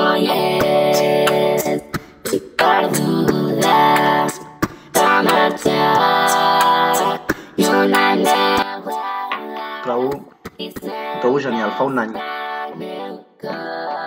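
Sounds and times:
autotuned singing: 0:00.0 - 0:14.0.

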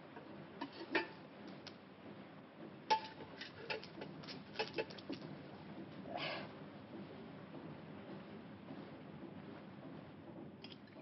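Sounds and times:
bananas clicking and knocking: 0:02.9 - 0:05.4.

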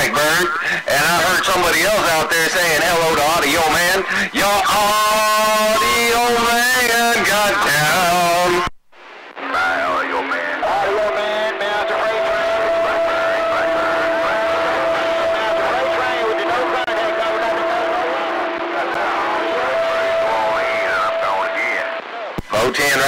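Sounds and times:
garbled radio voices: 0:00.0 - 0:23.0
radio static: 0:00.0 - 0:23.0.

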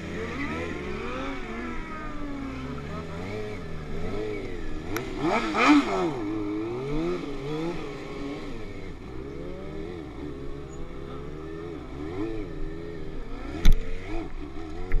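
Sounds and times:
motorcycle engine revving: 0:00.0 - 0:15.0
small click: 0:13.6 - 0:13.8.

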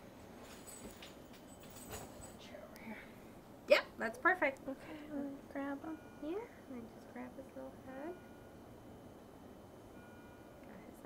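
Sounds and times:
hospital room background noise: 0:00.0 - 0:11.0.

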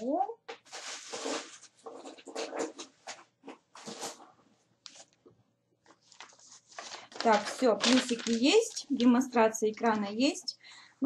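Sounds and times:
rustling while rummaging: 0:00.6 - 0:04.3, 0:05.9 - 0:10.2.

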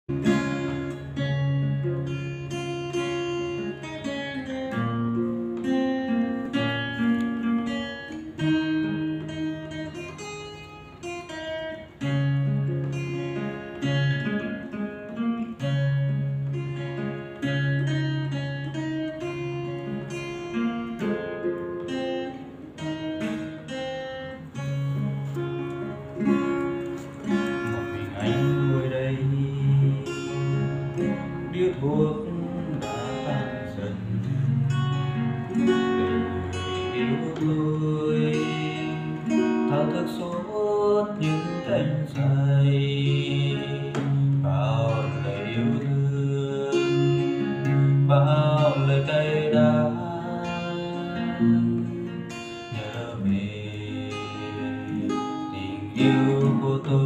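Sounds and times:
acoustic guitar picked notes: 0:00.0 - 0:57.0.

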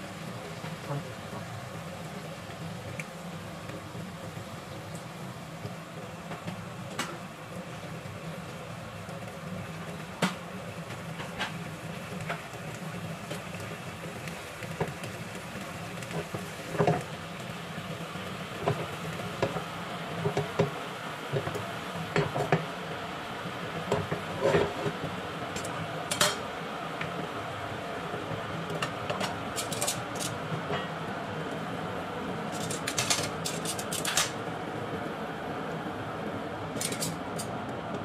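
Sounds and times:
fish sizzling in frying pan: 0:00.0 - 0:35.6.

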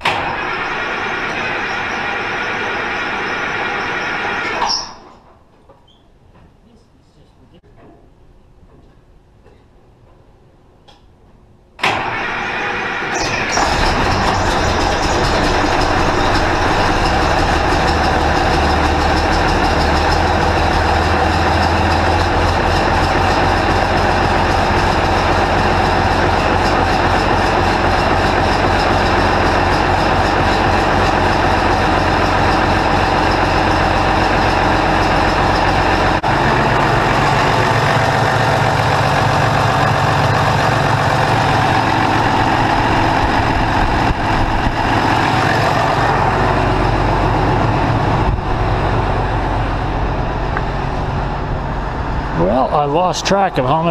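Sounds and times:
tractor diesel engine running: 0:00.0 - 0:05.1, 0:11.9 - 0:53.9.

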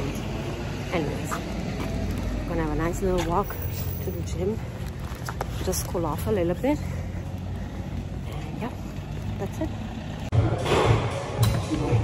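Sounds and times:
rumble of passing vehicles: 0:00.0 - 0:12.0.

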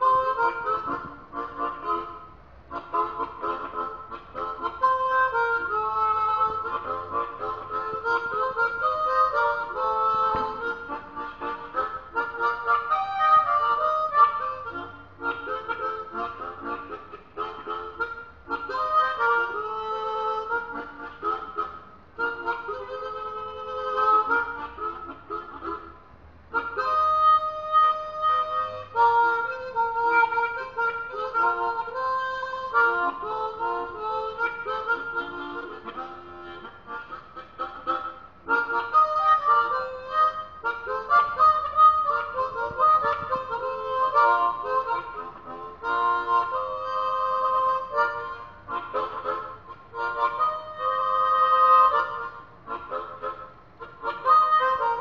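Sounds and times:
harmonica playing: 0:00.0 - 0:55.0.

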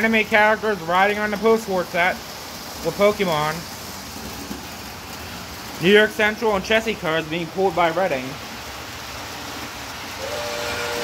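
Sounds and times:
model train wheels rolling on track: 0:00.0 - 0:11.0.

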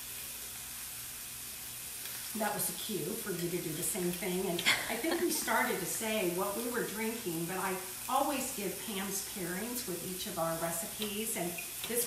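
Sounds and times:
fish sizzling in frying pan: 0:00.0 - 0:12.0.

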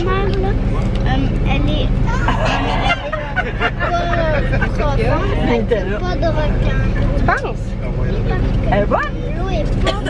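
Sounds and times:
bus engine drone and road noise: 0:00.0 - 0:10.0.

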